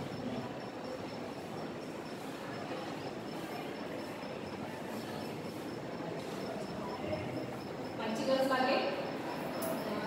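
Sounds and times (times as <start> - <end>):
wavering high-pitched whine: 0.0 - 10.0.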